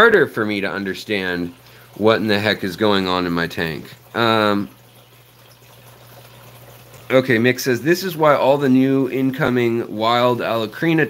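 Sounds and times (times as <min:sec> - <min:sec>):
aquarium water running: 0:00.0 - 0:11.0.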